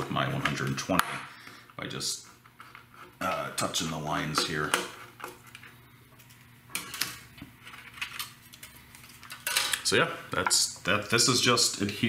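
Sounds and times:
parts clattering: 0:03.2 - 0:10.6.

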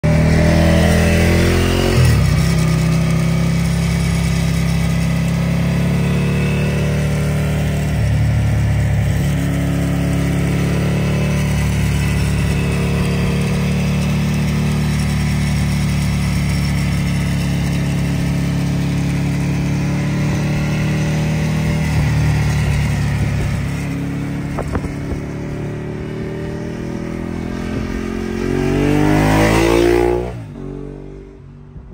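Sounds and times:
motorcycle engine revving: 0:00.0 - 0:31.9.

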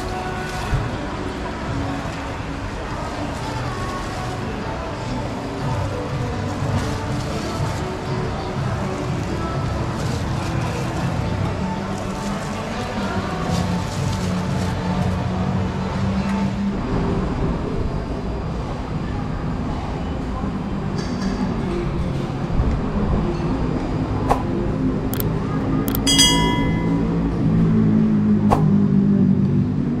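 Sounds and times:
sharp clicks: 0:25.9 - 0:26.2
short ringing clink: 0:25.9 - 0:27.2.

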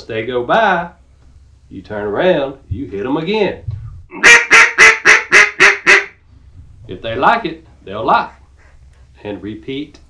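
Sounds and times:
duck call quacks: 0:04.1 - 0:06.2.

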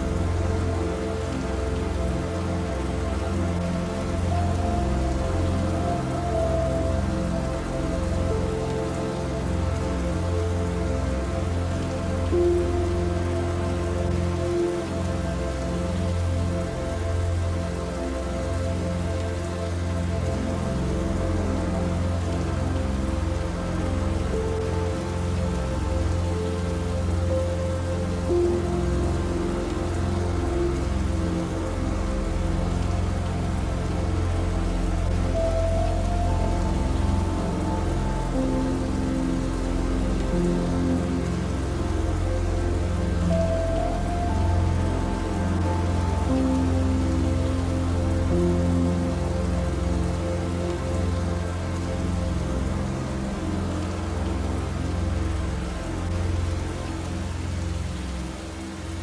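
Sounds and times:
soft music of held notes: 0:00.0 - 0:59.0
steady rain falling: 0:00.0 - 0:59.0.

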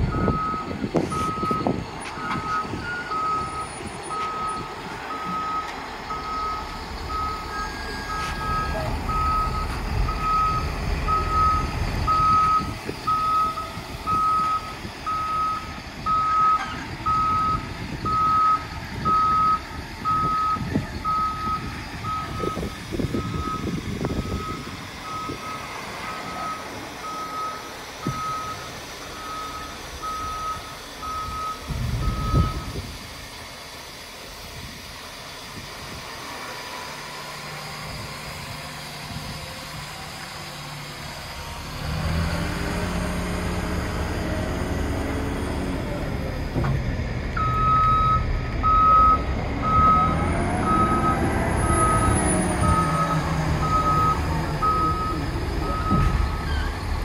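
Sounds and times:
diesel engine rumble: 0:00.0 - 0:57.0
reverse alarm beeping: 0:00.1 - 0:32.8, 0:47.4 - 0:56.5.

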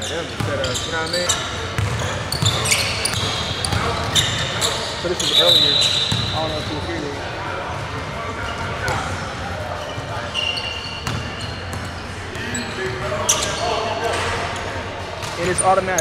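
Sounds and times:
sneaker squeaks: 0:00.0 - 0:07.1, 0:07.7 - 0:16.0
echoing chatter: 0:00.0 - 0:16.0.

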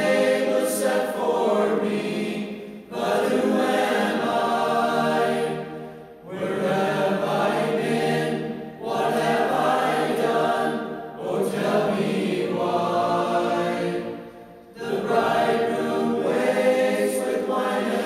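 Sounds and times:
choir singing: 0:00.0 - 0:18.0.

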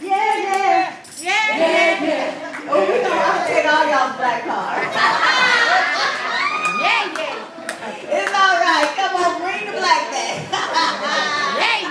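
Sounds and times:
women calling out: 0:06.6 - 0:07.4
handclaps: 0:06.6 - 0:09.0.

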